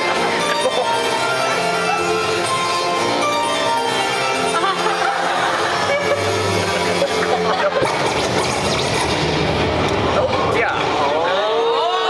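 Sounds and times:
loud noisy hubbub: 0.0s - 12.0s.

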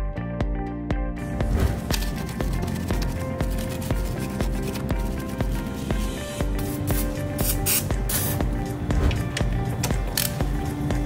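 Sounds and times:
background music: 0.0s - 11.0s
aerosol spray hissing: 5.8s - 8.4s.

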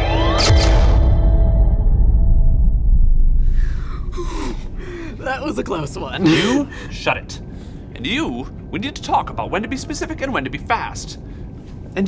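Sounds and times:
deep rumbling effect: 0.4s - 5.7s
people gasping for breath: 3.4s - 5.2s.

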